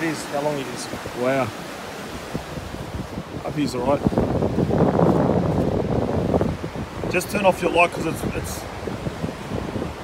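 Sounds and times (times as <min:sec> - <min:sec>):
surf washing up beach: 0:00.0 - 0:10.0
wind rumbling on microphone: 0:00.0 - 0:10.0.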